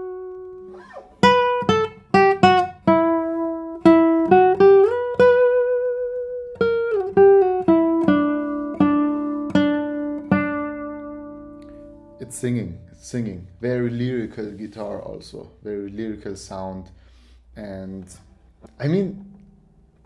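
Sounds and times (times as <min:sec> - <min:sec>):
classical guitar melody: 0:00.0 - 0:13.0, 0:18.5 - 0:20.0.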